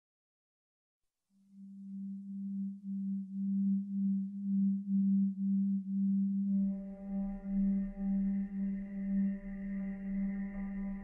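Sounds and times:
low pulsing drone tone: 1.6 - 11.0.

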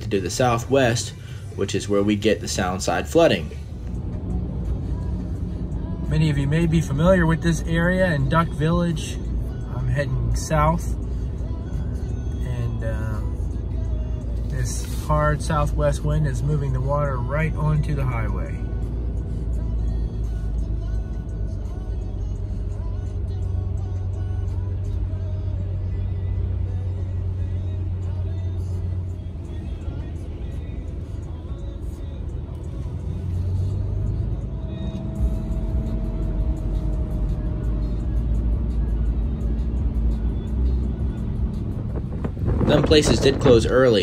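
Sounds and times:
background music: 0.0 - 44.0
car road rumble: 0.0 - 44.0.

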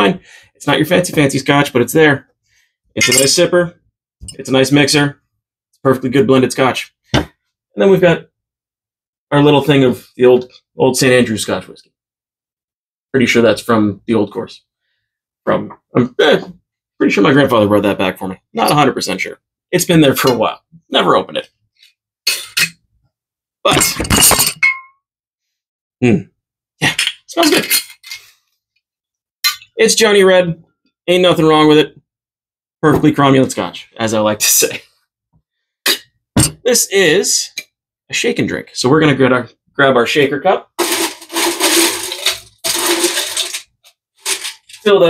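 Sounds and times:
glassy clink: 3.0 - 3.4, 23.9 - 25.0, 29.4 - 29.7
ice cubes clattering into shaker: 40.8 - 44.9
cap scraping: 40.8 - 45.0.

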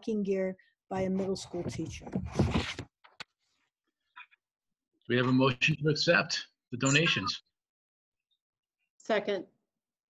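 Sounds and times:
paper rustling: 1.7 - 3.2.

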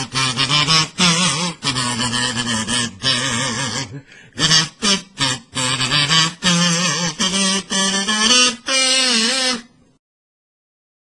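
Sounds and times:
kazoo playing a tune: 0.0 - 9.9.

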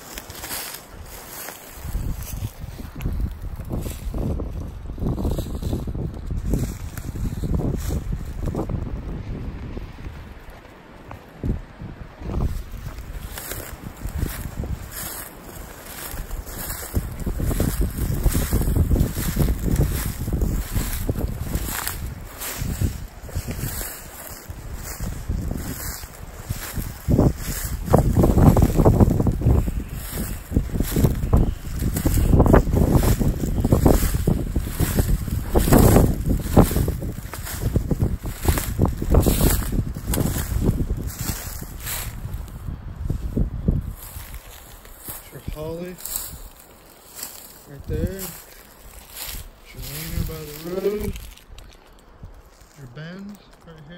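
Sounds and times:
wind buffeting microphone: 0.0 - 52.7
footsteps in dry leaves: 0.0 - 53.8.

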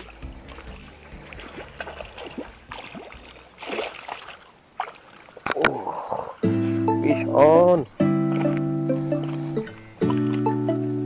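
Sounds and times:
fish splashing in shallow water: 0.0 - 5.8, 8.2 - 10.5.

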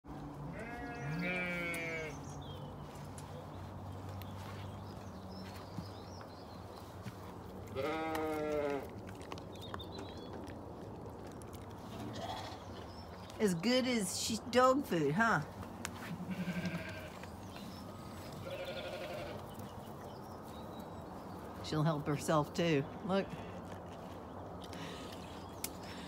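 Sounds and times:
sheep bleating: 0.5 - 2.3, 7.7 - 8.9, 16.0 - 17.3, 18.4 - 19.5.

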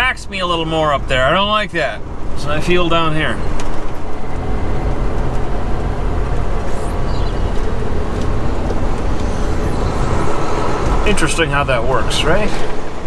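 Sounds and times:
truck diesel engine running: 0.0 - 13.0.

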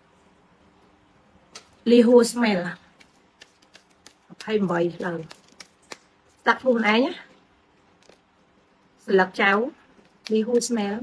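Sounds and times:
woman speaking: 1.8 - 2.9, 4.3 - 5.4, 6.4 - 7.4, 9.0 - 11.0.

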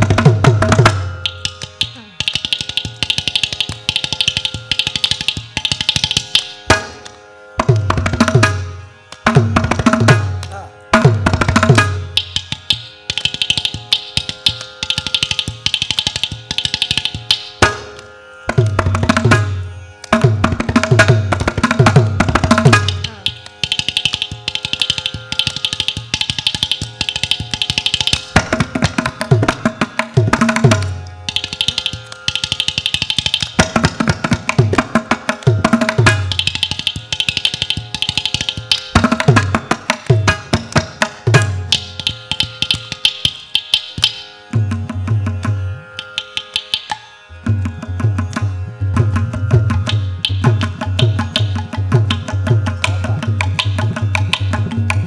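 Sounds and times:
drum and clay pot percussion: 0.0 - 55.0
tanpura drone: 0.0 - 55.0.

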